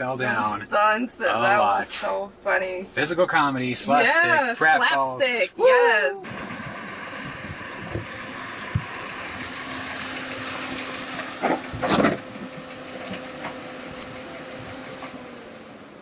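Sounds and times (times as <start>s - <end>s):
car engine running: 0.0s - 16.0s.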